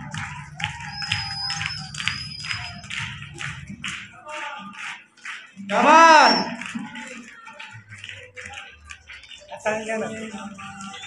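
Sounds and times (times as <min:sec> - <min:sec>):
dance music beat: 0:00.0 - 0:11.0.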